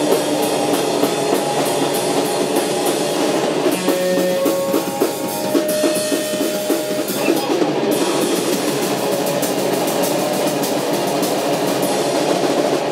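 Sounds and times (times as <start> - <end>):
drum kit with cymbals: 0.0 - 12.9
electric guitar: 0.0 - 12.9.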